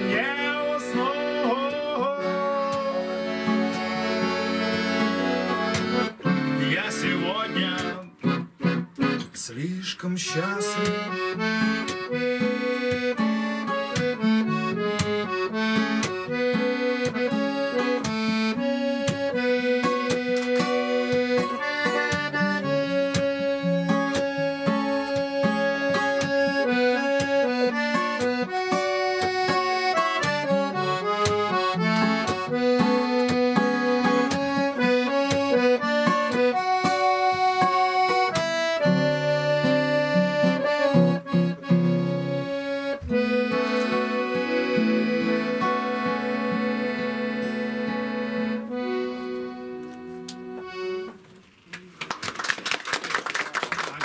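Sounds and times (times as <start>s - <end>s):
acoustic guitar strumming: 0.0s - 51.4s
accordion folk tune: 0.0s - 51.6s.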